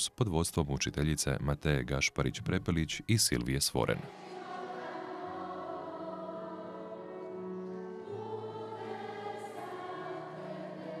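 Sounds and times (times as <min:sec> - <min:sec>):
children's choir singing: 0:04.0 - 0:11.0.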